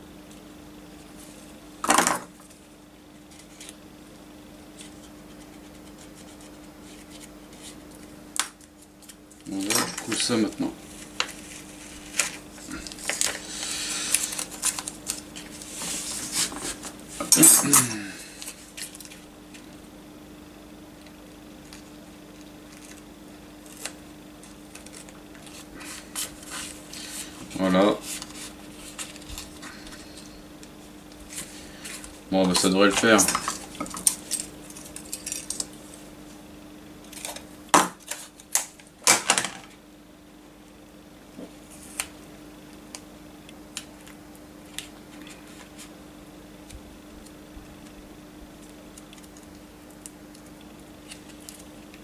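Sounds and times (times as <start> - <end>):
masking tape crinkling: 4.8 - 17.4, 23.6 - 36.0
scratchy rustling: 10.9 - 17.2, 24.9 - 30.0.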